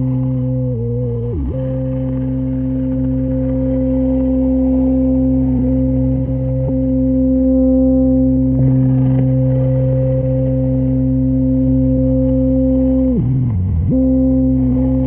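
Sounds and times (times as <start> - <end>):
ambient tape-loop drone music: 0.0 - 15.0.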